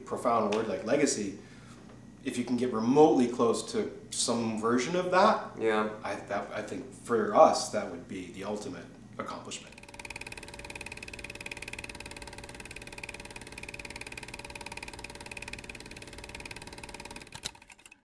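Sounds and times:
steady high whine: 0.0 - 17.8
film mechanism clattering: 9.7 - 18.0.

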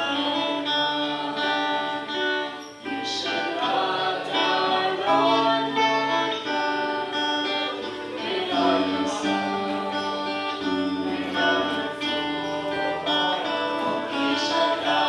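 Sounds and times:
group singing worship song: 0.0 - 15.0.

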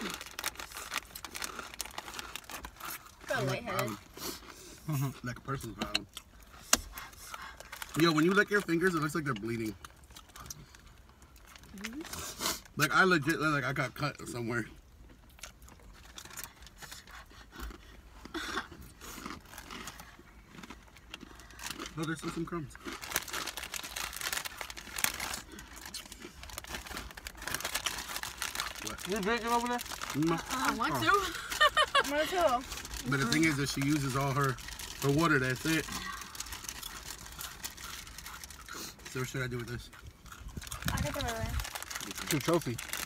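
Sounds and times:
chip bags crinkling: 0.0 - 4.4, 6.5 - 12.2, 19.0 - 43.0
crunching chips: 0.0 - 4.4, 5.0 - 12.8, 15.2 - 43.0.

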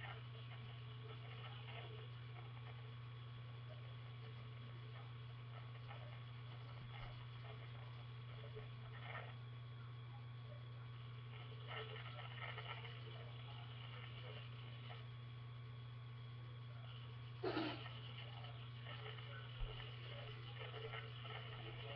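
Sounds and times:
faint clicks and rustles: 0.0 - 21.9
steady low hum: 0.0 - 21.9.

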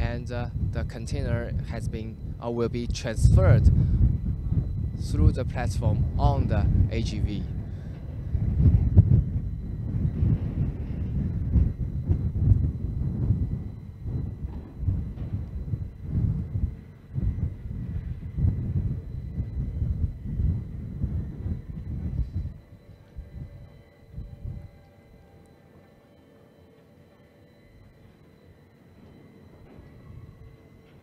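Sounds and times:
low outdoor rumble: 0.0 - 25.7
faint steady high tones: 0.0 - 31.0.

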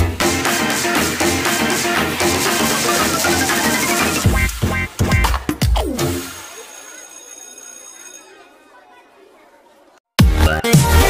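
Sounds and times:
faint chatter of voices: 6.2 - 10.0.

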